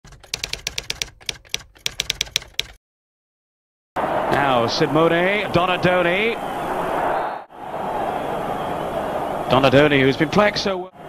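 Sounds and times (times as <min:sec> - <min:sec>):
typewriter keystroke clicks: 0:00.1 - 0:02.8.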